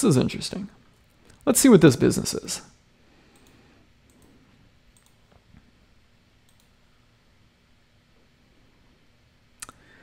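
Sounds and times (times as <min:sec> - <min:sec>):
computer mouse clicking: 0:03.3 - 0:05.4, 0:06.4 - 0:06.8.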